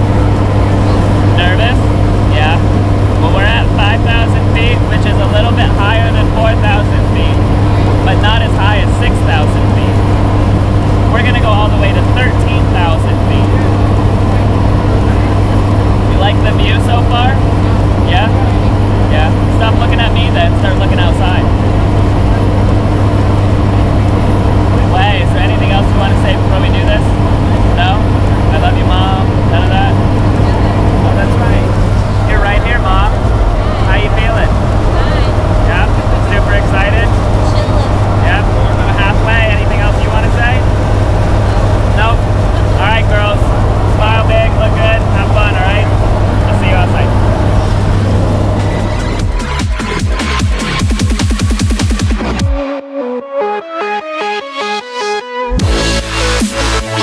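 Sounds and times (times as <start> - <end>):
plane engines droning: 0.0 - 52.5
faint voices: 24.8 - 48.6.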